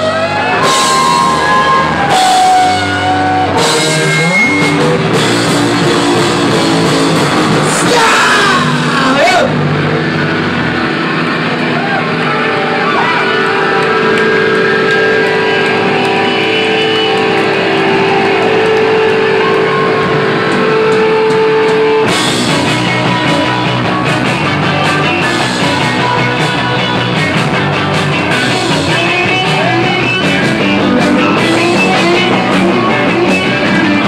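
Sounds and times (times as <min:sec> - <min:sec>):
rock band playing live: 0:00.0 - 0:34.0.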